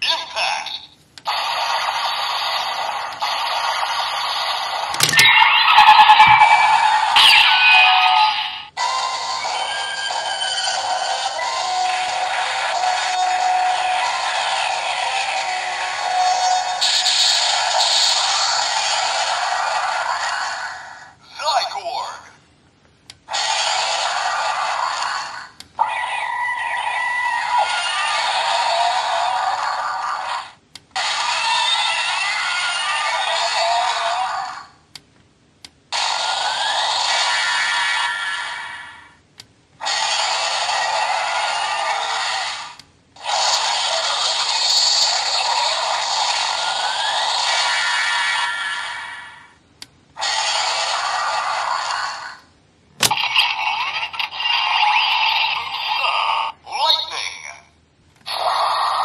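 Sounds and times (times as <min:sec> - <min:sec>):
toy electronic sound effects: 0:01.3 - 0:18.9, 0:25.8 - 0:28.9, 0:53.0 - 0:57.6.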